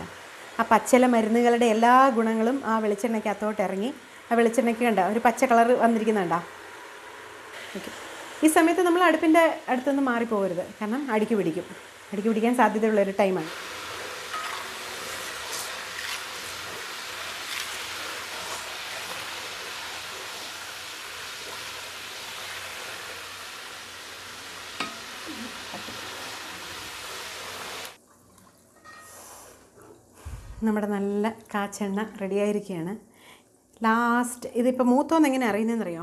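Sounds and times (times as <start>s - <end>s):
oil sizzling and bubbling in a pan: 0.0s - 29.6s
ladle stirring: 13.7s - 19.7s.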